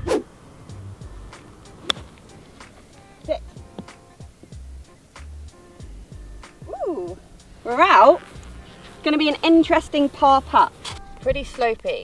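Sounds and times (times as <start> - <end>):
golf club striking sand: 0.0 - 5.5
quiet background music: 0.0 - 12.0.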